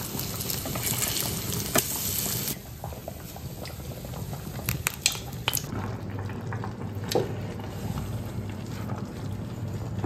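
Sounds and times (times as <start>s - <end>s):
water boiling in a pot: 0.0s - 10.0s.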